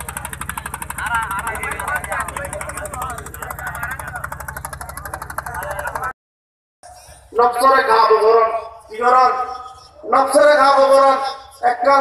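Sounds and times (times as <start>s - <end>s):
men talking: 0.0s - 6.1s, 7.3s - 12.0s
motor boat engine pulsing: 0.0s - 6.1s.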